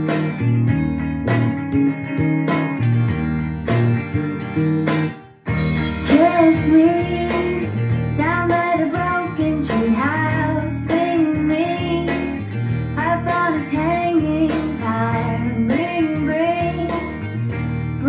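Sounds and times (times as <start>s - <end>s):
electric guitar melody: 0.0s - 18.0s
pop backing track with bass: 0.0s - 18.0s.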